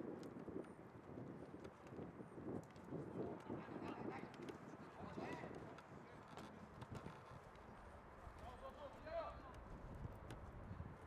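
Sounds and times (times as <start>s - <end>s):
low outdoor background noise: 3.0s - 11.0s.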